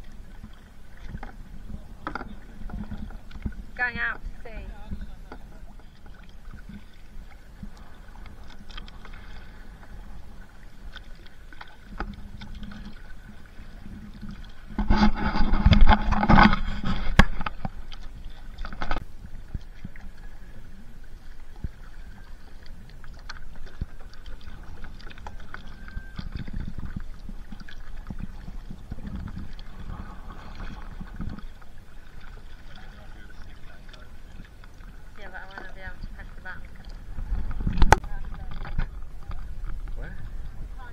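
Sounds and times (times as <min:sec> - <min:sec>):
waves lapping against kayak hull: 0:00.0 - 0:40.9.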